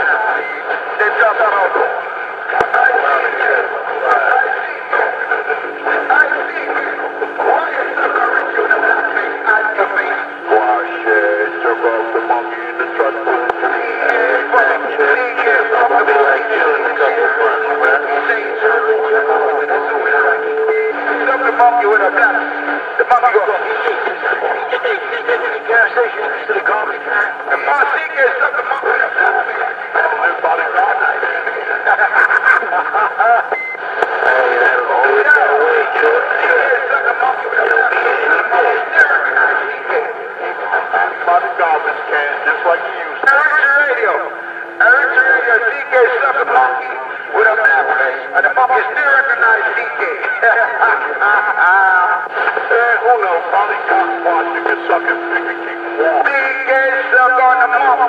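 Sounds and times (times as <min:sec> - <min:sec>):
voices over phone line: 0:00.0 - 0:58.0.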